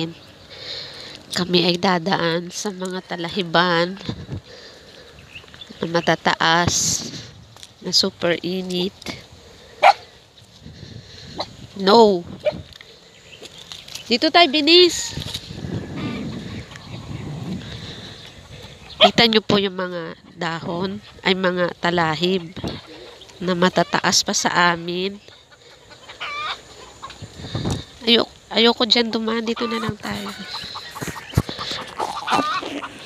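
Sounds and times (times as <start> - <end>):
dog barking: 9.8 - 10.1
chicken squawk: 14.9 - 17.1, 25.4 - 27.2, 29.4 - 33.0.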